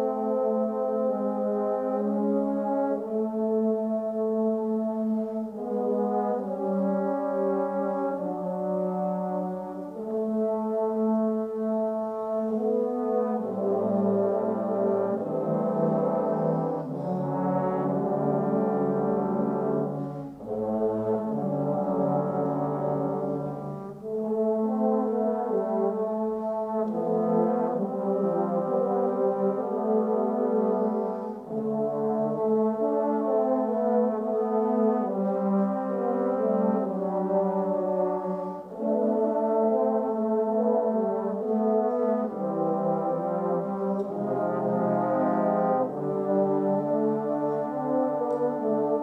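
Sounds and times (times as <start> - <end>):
trombone choir chords: 0.0 - 49.0.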